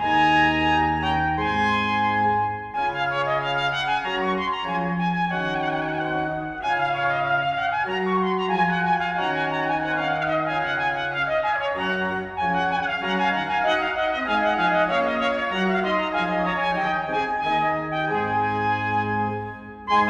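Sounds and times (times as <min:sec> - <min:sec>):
bass line: 0:00.0 - 0:20.0
organ: 0:00.0 - 0:20.0
trumpet melody: 0:00.0 - 0:20.0.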